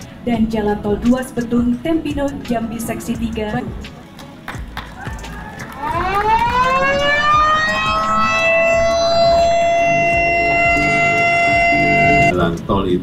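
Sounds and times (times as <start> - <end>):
siren wailing: 5.2 - 12.3.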